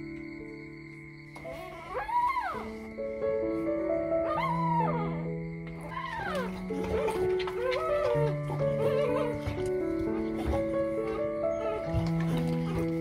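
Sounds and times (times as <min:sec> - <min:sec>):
background music: 0:00.0 - 0:13.0
dog whimpering: 0:01.4 - 0:02.9, 0:04.2 - 0:13.0.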